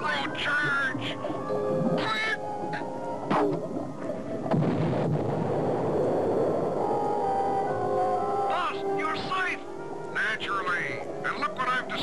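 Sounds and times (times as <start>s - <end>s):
music: 0.0s - 12.0s
cartoon explosion rumble: 4.5s - 6.0s.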